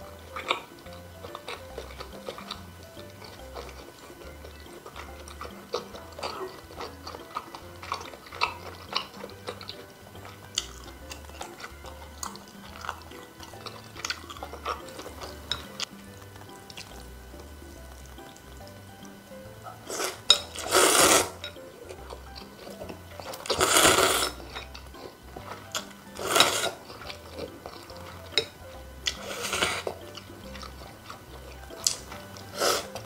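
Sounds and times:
soft eating clicks: 0:00.0 - 0:20.8, 0:21.4 - 0:23.6, 0:24.2 - 0:33.0
loud noodle slurps: 0:19.9 - 0:21.4, 0:23.4 - 0:24.5, 0:26.2 - 0:27.0, 0:29.1 - 0:30.0, 0:31.9 - 0:33.0.

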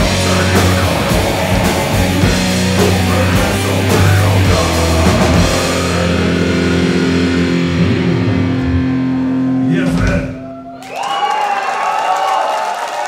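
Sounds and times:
metal band playing: 0:00.0 - 0:10.6
loud held shout: 0:10.3 - 0:13.0.

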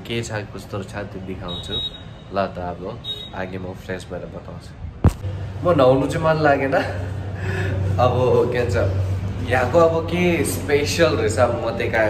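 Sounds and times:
people talking: 0:00.0 - 0:04.8, 0:05.6 - 0:12.0.

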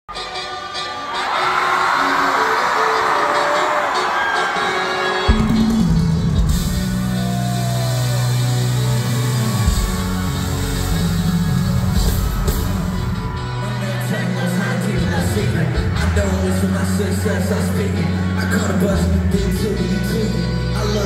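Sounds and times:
crowd screaming and cheering: 0:00.1 - 0:21.0
deep bass line intro music: 0:05.3 - 0:21.0.

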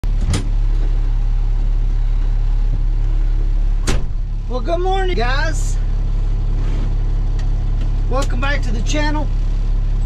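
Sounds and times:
truck engine idling: 0:00.0 - 0:10.0
loud thump: 0:03.8 - 0:04.2.

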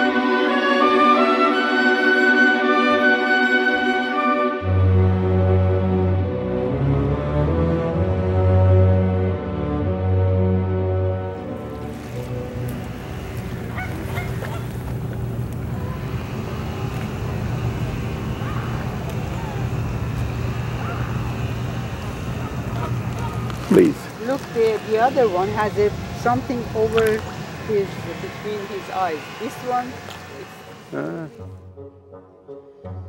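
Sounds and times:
orchestral music with held notes: 0:00.0 - 0:13.8
steady low rumble: 0:11.0 - 0:31.5
waterfowl honks: 0:12.1 - 0:15.4, 0:18.2 - 0:19.6, 0:20.5 - 0:23.6.

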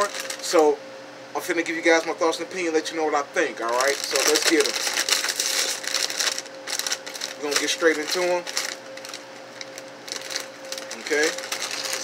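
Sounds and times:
chip bag crinkling: 0:00.0 - 0:00.6, 0:03.6 - 0:12.0
steady low hum: 0:00.0 - 0:12.0.

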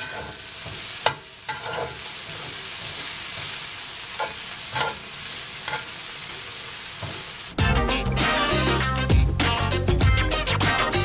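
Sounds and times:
metal spatula scraping pan: 0:00.0 - 0:06.0
food sizzling in skillet: 0:00.0 - 0:09.8.

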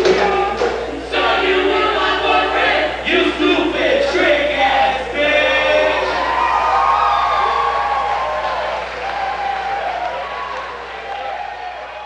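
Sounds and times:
crowd cheering and shouting: 0:05.6 - 0:12.0.

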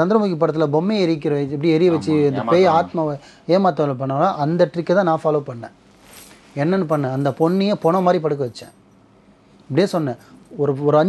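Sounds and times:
man talking: 0:00.0 - 0:05.7
faint short hiss: 0:05.8 - 0:06.7.

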